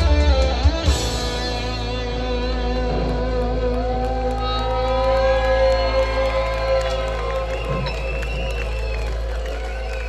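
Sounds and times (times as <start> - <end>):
rock band held chord: 0.0 - 5.1
crowd cheering and shouting: 0.0 - 10.0.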